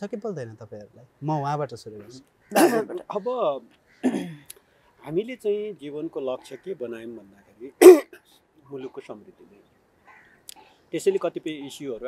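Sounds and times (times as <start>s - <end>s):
person clearing throat: 2.6s - 3.0s, 4.0s - 4.4s, 7.8s - 8.1s
person speaking: 7.8s - 8.1s.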